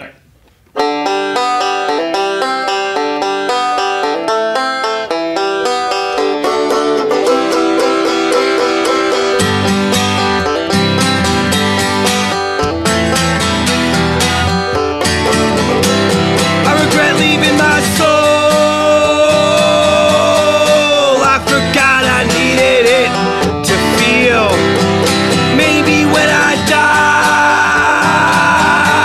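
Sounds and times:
lower instrumental part: 0.7 - 29.0
acoustic guitar strumming: 0.8 - 29.0
banjo picking: 0.8 - 29.0.

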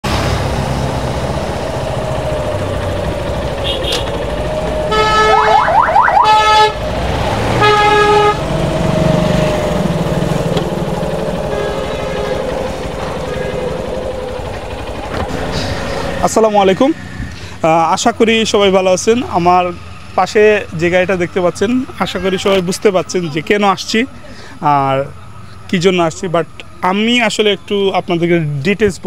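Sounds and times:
motorcycle engine running: 0.1 - 23.4
horn blasts: 3.6 - 8.7, 9.5 - 15.7.

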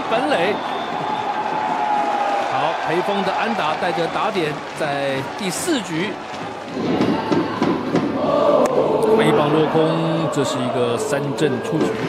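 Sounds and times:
crowd cheering and chanting: 0.0 - 12.0.

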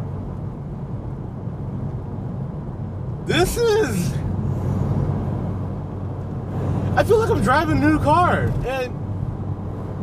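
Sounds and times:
car engine drone from inside cabin: 0.0 - 10.0
road noise: 0.0 - 10.0.

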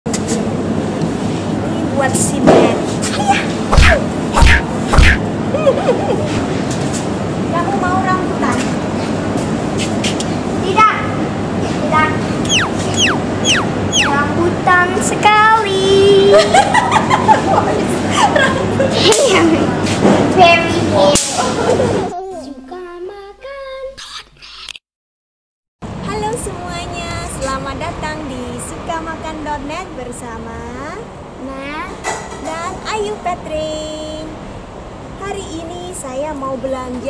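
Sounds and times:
sharp swish: 3.7 - 5.2
laughing talk in a shop: 5.3 - 6.8, 16.0 - 20.3, 21.2 - 22.2
child singing: 22.1 - 24.0.

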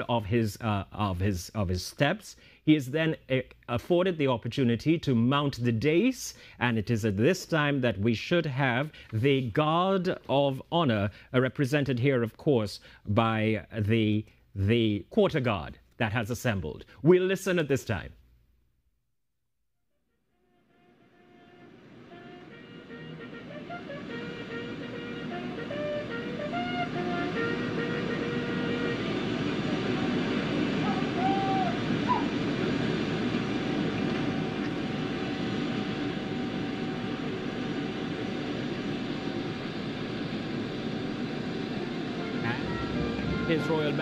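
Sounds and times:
jet engines whining: 21.0 - 44.0
band music: 21.7 - 32.6, 41.8 - 44.0.

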